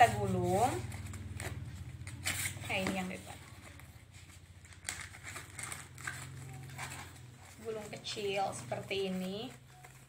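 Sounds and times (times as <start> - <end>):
cardboard crackling and scraping: 0.0 - 10.0.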